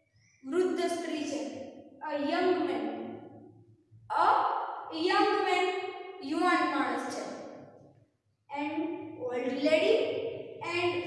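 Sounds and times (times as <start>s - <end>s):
woman speaking: 4.1s - 5.6s, 8.5s - 10.0s, 10.6s - 11.0s.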